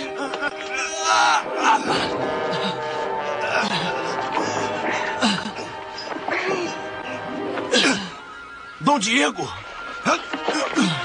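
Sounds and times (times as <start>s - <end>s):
dramatic orchestral music: 0.0s - 11.0s.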